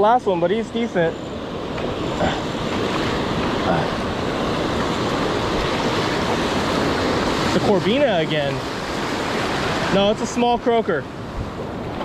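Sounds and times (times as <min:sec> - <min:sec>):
ocean surf breaking: 0:00.0 - 0:12.0.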